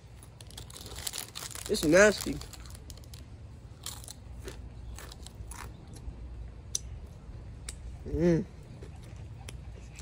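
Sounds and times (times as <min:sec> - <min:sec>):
person chewing crunchy chip: 0:00.1 - 0:06.1.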